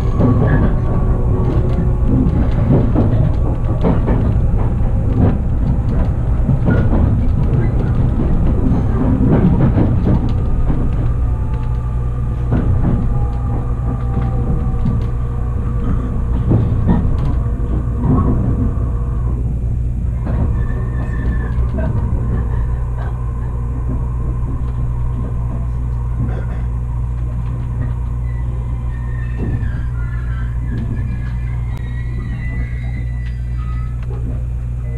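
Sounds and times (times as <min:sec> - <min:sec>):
railcar rumble inside cabin: 0:00.0 - 0:34.9
wheels clicking over rail joints: 0:00.0 - 0:34.9.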